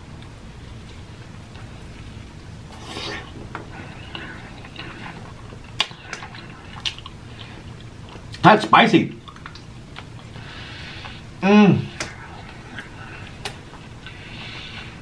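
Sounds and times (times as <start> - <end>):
close chewing: 0.1 - 8.4.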